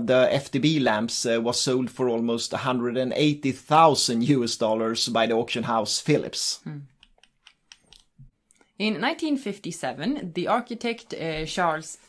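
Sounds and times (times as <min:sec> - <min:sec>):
woman speaking: 0:06.7 - 0:06.9, 0:08.8 - 0:12.0.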